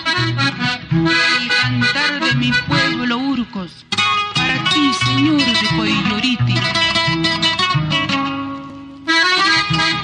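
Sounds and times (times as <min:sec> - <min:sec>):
accordion melody: 0:00.0 - 0:10.0
bass notes: 0:00.0 - 0:10.0
rhythmic guitar and mandolin: 0:00.0 - 0:10.0.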